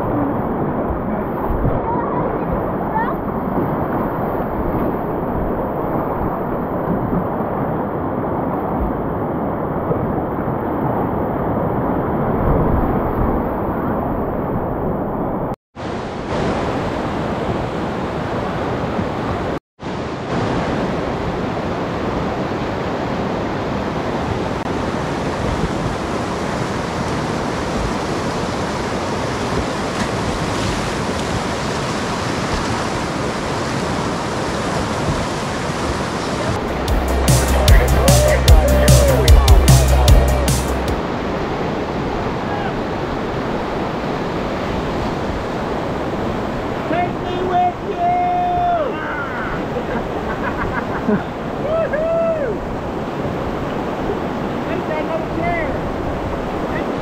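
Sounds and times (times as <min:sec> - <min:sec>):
whitewater rapids rushing: 0:15.8 - 0:57.0
music with heavy low beat: 0:36.7 - 0:41.0.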